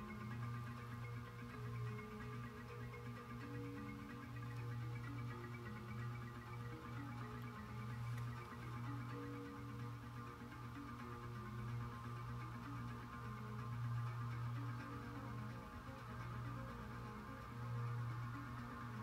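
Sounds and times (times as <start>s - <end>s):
faint radio music: 0.0s - 19.0s.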